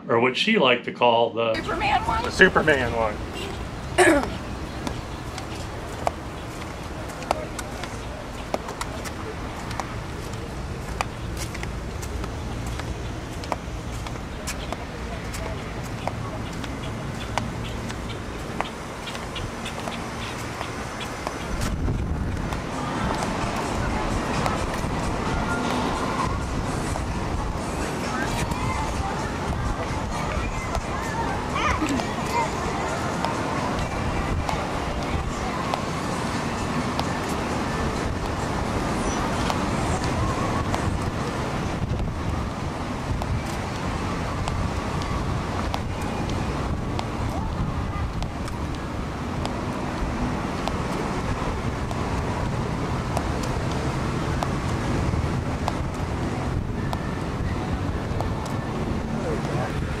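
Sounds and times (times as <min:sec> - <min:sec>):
indistinct voices: 0:01.6 - 1:00.0
road traffic: 0:01.6 - 1:00.0
wind on microphone: 0:01.6 - 1:00.0.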